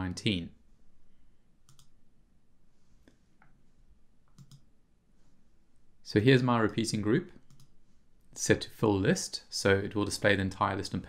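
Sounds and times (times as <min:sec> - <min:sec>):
faint computer mouse clicks: 0:01.7 - 0:01.9, 0:04.3 - 0:04.7, 0:07.5 - 0:07.7.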